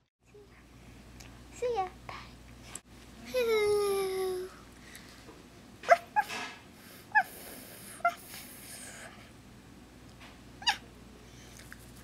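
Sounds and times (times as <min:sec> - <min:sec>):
high yips: 0:10.6 - 0:10.8.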